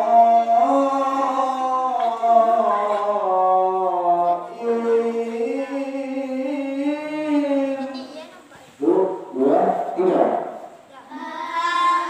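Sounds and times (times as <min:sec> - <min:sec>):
group of voices reciting: 0:00.0 - 0:12.0
person reciting melodically: 0:00.0 - 0:12.0.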